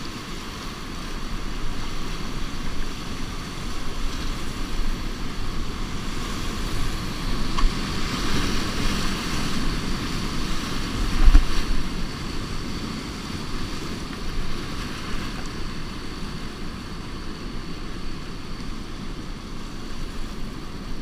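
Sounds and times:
whitewater rapids rushing: 0:00.0 - 0:21.0
wind on microphone: 0:00.0 - 0:21.0.

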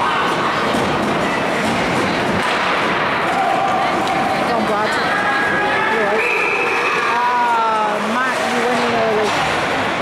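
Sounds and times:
people shouting: 0:03.2 - 0:07.8.

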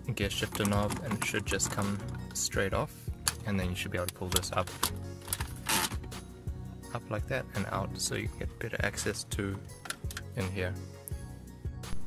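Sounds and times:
background music: 0:00.0 - 0:12.0
plastic rasp: 0:00.4 - 0:02.3, 0:04.8 - 0:06.1.

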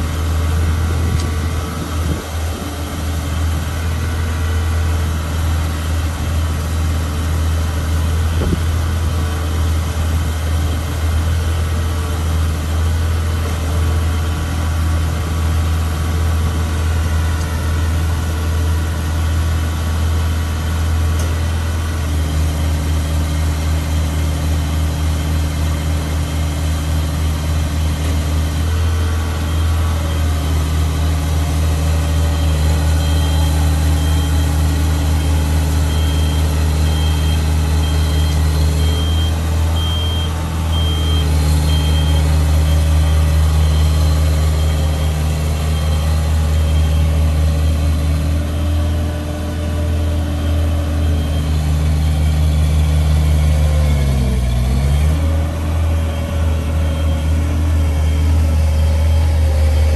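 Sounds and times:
diesel engine running: 0:00.0 - 0:59.9
high beeping alarm: 0:32.4 - 0:45.2.

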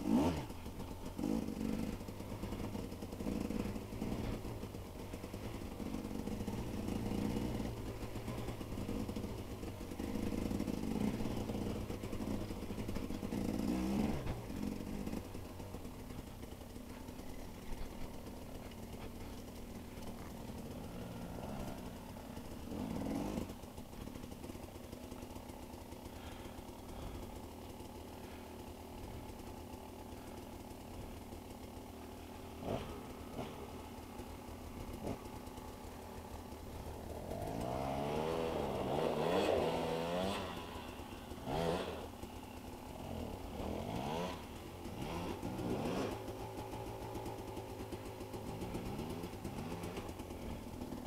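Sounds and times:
dirt bike idling: 0:00.0 - 0:51.0
dirt bike revving: 0:00.0 - 0:51.0
wheel spinning in mud: 0:36.8 - 0:51.0.

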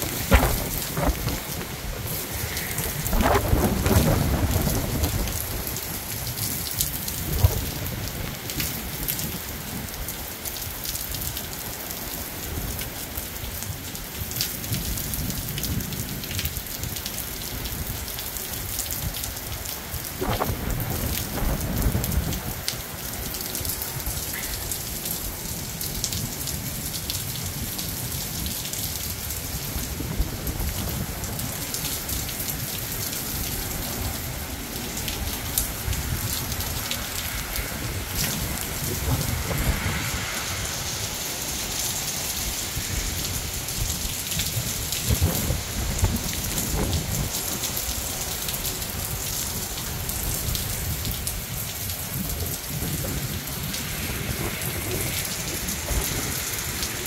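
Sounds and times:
thunder rumbling: 0:00.0 - 0:09.2, 0:20.0 - 0:22.7, 0:33.1 - 0:47.4
heavy rain falling: 0:00.0 - 0:57.0
raindrops hitting near microphone: 0:00.0 - 0:57.0.

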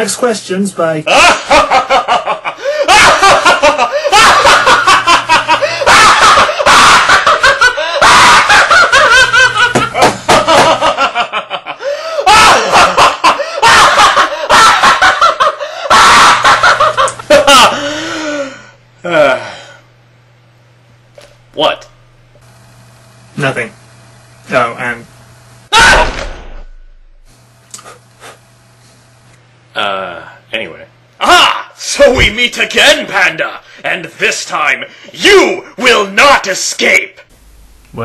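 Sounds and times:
man laughing loudly: 0:01.1 - 0:19.7.

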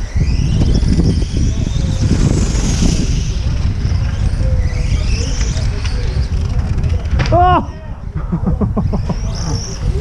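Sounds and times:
electric rc car motors whining: 0:00.0 - 0:10.0
wind buffeting microphone: 0:00.0 - 0:10.0.

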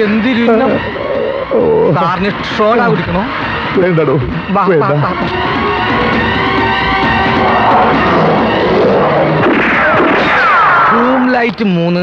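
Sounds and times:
men speaking excitedly: 0:00.0 - 0:05.5.

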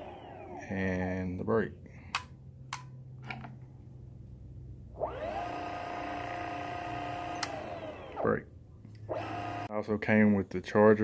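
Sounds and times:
electric motor whine: 0:00.0 - 0:00.7, 0:05.0 - 0:08.3, 0:09.1 - 0:09.7.

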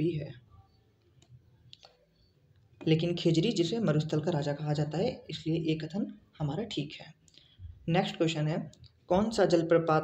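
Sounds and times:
man speaking: 0:00.0 - 0:00.5, 0:02.8 - 0:07.2, 0:07.8 - 0:10.0.

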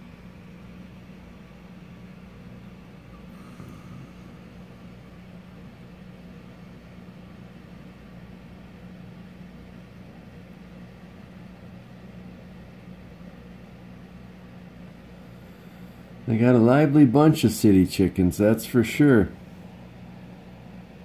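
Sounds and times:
low mechanical hum: 0:00.0 - 0:21.0.

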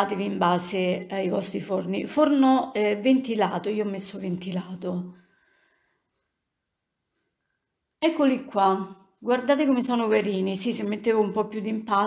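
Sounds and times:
woman's voice: 0:00.0 - 0:05.2, 0:08.0 - 0:12.0.

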